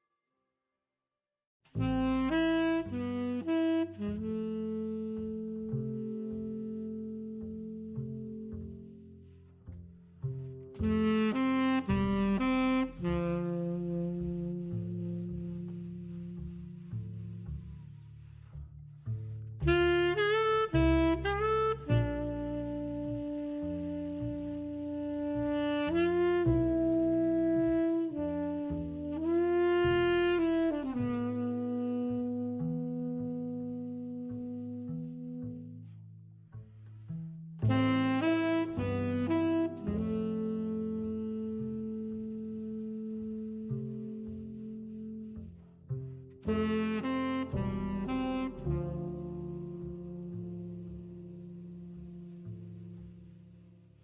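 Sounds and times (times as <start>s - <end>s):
bass line: 1.7s - 54.0s
lead melody with sliding notes: 1.7s - 54.0s.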